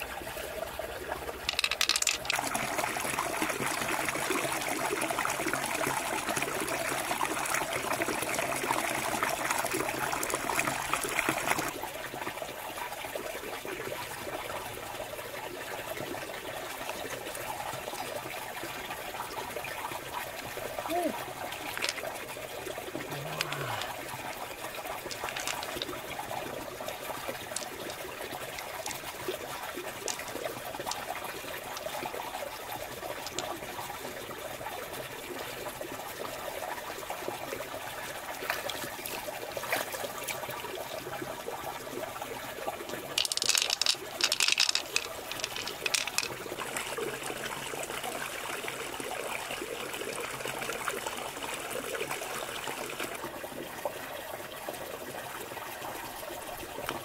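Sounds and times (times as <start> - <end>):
water trickling: 0.0 - 57.0
small clicks: 1.5 - 2.4, 25.1 - 25.9, 42.9 - 46.3
sharp crackling noise: 42.9 - 46.4.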